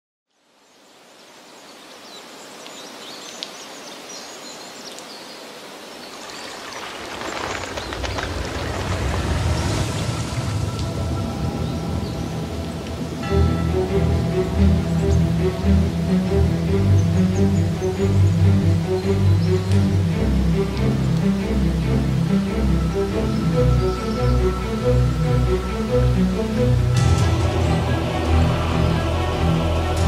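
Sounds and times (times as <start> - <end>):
water rushing: 1.4 - 30.0
deep rumble: 7.0 - 30.0
music with held notes: 10.6 - 30.0.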